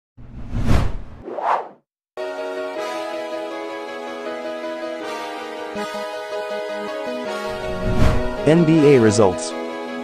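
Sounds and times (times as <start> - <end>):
whoosh: 0.2 - 1.8, 7.7 - 8.3.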